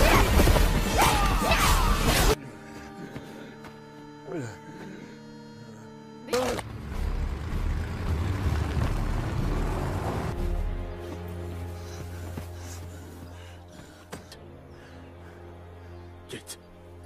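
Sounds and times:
loud fight noise: 0.0s - 2.4s
trucks rumbling: 6.5s - 11.0s.

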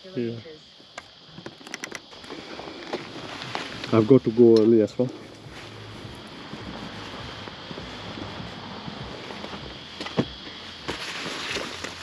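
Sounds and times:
fabric rustling: 2.3s - 4.1s, 5.2s - 12.0s.

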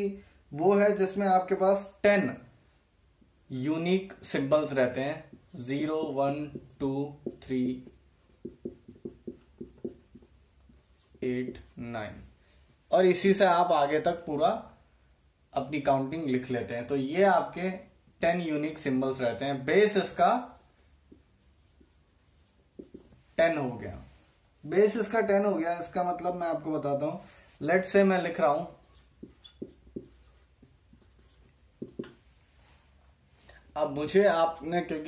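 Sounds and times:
marker squeaking on whiteboard: 6.4s - 11.8s, 20.5s - 23.2s, 28.6s - 32.2s
soft taps: 31.8s - 32.2s.

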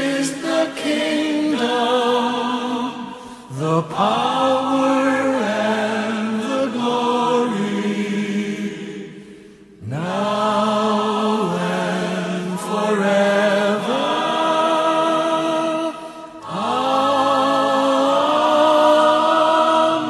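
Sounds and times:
choir-like voices singing long notes: 0.0s - 20.0s.

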